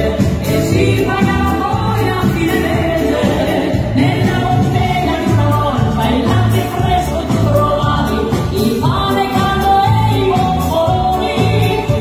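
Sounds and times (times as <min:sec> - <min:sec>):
dance band playing: 0:00.0 - 0:12.0
steady bass line: 0:00.0 - 0:12.0
woman singing into microphone: 0:00.0 - 0:12.0.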